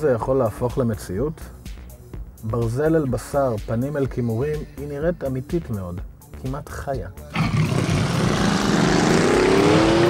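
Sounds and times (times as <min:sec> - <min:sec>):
road noise: 0:07.3 - 0:10.0
car engine pulling hard: 0:07.4 - 0:10.0.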